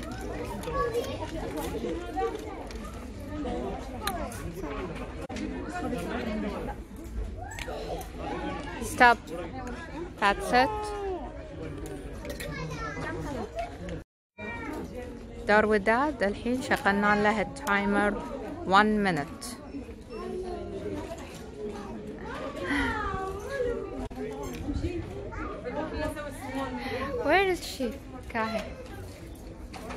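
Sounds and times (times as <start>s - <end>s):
background murmur: 0.0s - 29.9s
children talking and chattering: 0.0s - 29.9s.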